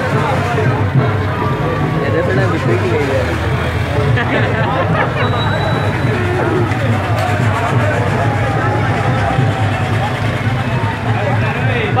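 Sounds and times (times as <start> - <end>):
crowd talking and calling out: 0.0 - 12.0
low rumble of motor vehicles: 0.0 - 12.0.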